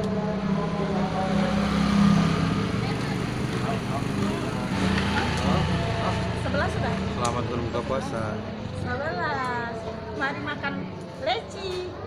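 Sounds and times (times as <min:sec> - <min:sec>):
quiet talking: 0:00.0 - 0:12.0.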